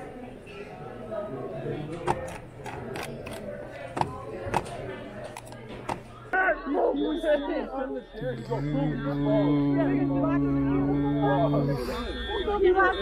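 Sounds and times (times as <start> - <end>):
faint background voices: 0.0 - 13.0
voices outdoors: 0.0 - 13.0.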